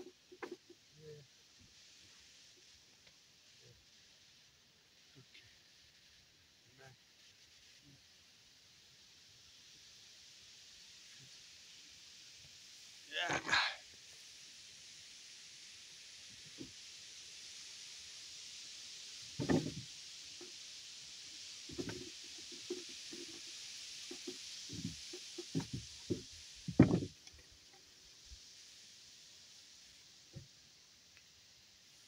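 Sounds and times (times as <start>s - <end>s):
steady high hiss: 0.0s - 32.0s
wooden knocks and thumps: 19.4s - 19.8s, 25.6s - 27.2s.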